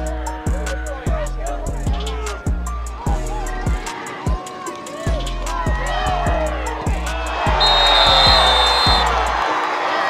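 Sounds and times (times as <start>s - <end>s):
music with heavy bass and kick drum: 0.0s - 4.5s, 5.1s - 9.4s
stadium crowd noise: 2.0s - 10.0s
referee's whistle blast: 7.6s - 9.1s.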